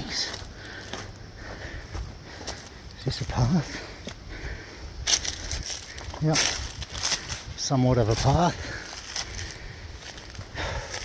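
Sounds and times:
footsteps through dry leaves: 0.0 - 3.8, 5.0 - 11.0
foliage rustling: 0.0 - 11.0.

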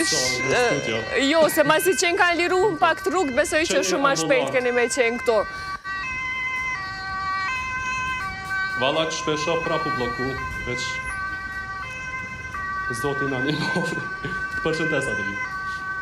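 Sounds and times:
two-tone siren: 0.0 - 16.0.

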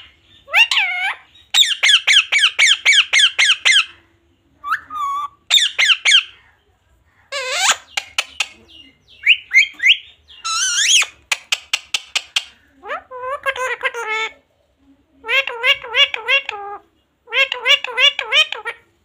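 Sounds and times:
parakeet squawking: 0.4 - 4.0, 4.6 - 6.4, 7.3 - 14.4, 15.2 - 18.8
short bird clicks: 11.2 - 12.6.

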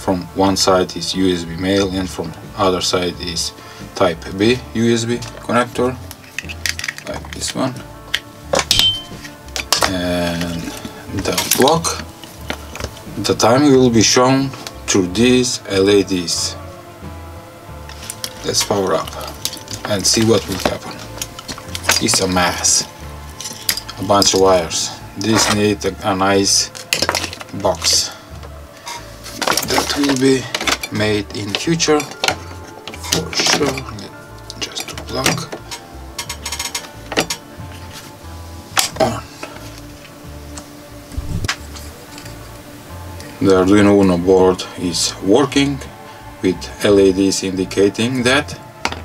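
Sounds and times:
cable plug clicking and rattling: 6.0 - 10.5, 34.4 - 37.5
high ting: 8.7 - 9.3.

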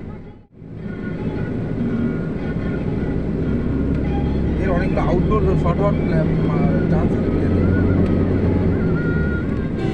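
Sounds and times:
moving vehicle rumbling: 0.0 - 9.9.

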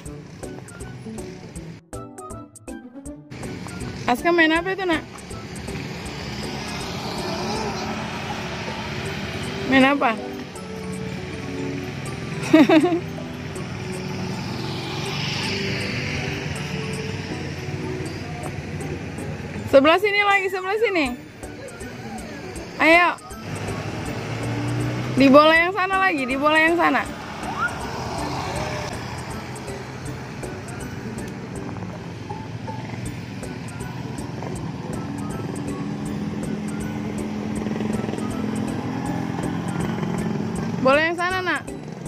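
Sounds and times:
motor scooter engine humming: 0.0 - 2.4, 3.3 - 42.0.

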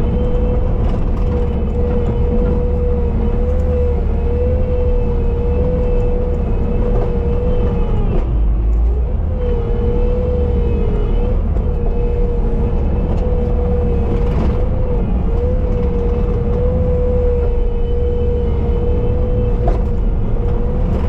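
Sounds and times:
engine whine: 0.0 - 21.0
track loader diesel rumble: 0.0 - 21.0.

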